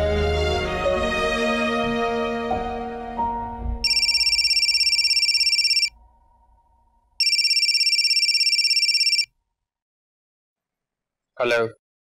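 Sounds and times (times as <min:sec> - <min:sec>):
background music: 0:00.0 - 0:06.4
phone ringtone trilling: 0:03.8 - 0:06.0, 0:07.2 - 0:09.3.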